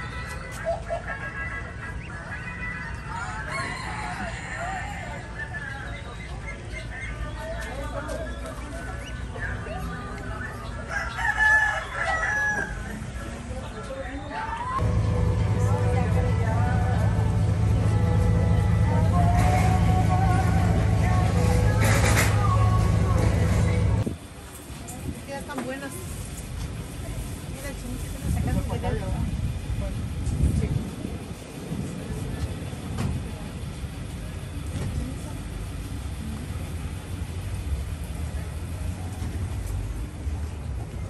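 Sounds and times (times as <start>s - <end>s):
people's voices: 0.0s - 41.0s
vehicle engine idling: 14.8s - 24.5s, 26.1s - 41.0s.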